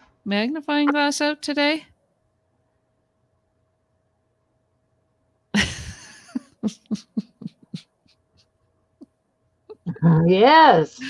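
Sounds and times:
woman laughing: 0:05.6 - 0:08.2, 0:09.7 - 0:10.4.

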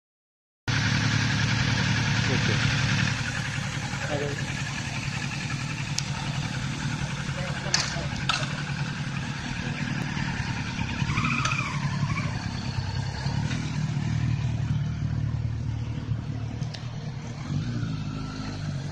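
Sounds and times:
motorcycle engine pulling away: 0:00.7 - 0:18.9.

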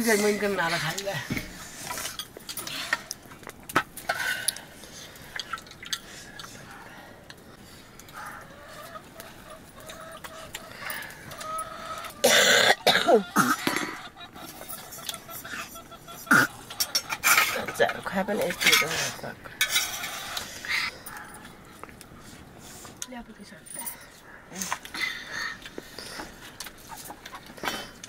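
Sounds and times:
loud cough: 0:12.2 - 0:14.0.

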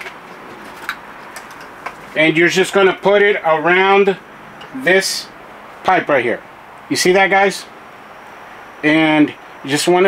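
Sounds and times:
steady low hiss: 0:00.0 - 0:10.0.

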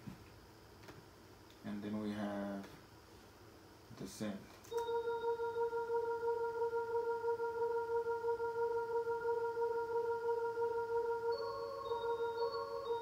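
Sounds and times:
pulsing synthesizer pad: 0:04.7 - 0:13.0.

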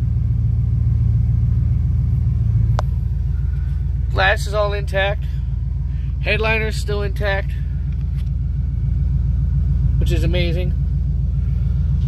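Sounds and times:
car engine idling: 0:00.0 - 0:12.0
man speaking: 0:04.1 - 0:05.3, 0:06.2 - 0:07.7, 0:10.0 - 0:10.8.

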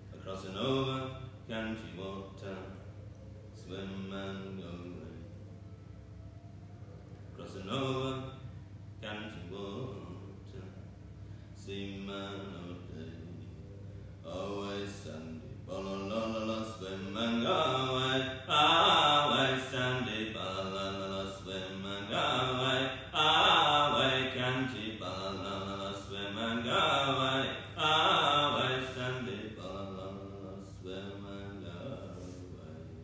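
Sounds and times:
voices chanting: 0:12.0 - 0:33.0.

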